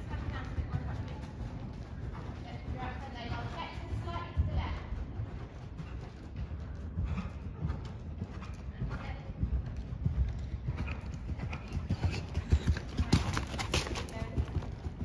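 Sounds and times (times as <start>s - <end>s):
horse hoofbeats on sand: 0.0s - 15.0s.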